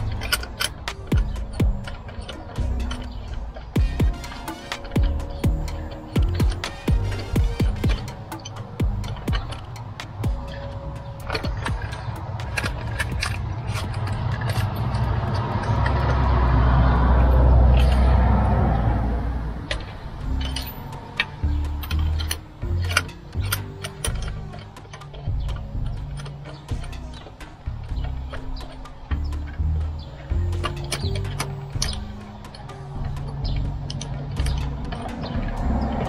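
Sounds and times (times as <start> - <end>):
ratchet clicking: 0.0 - 18.2, 19.6 - 36.0
background music: 0.0 - 36.0.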